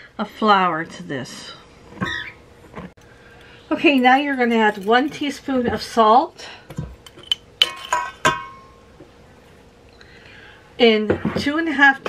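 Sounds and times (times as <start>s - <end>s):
metal spoons clinking on bowl: 3.8s - 5.6s, 7.1s - 8.7s.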